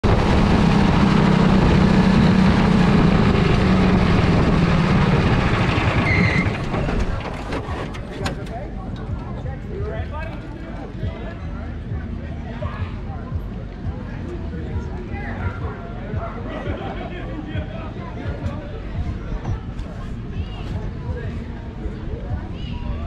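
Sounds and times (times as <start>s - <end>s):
race car engine drone: 0.0s - 22.5s
faint voices: 0.0s - 23.0s.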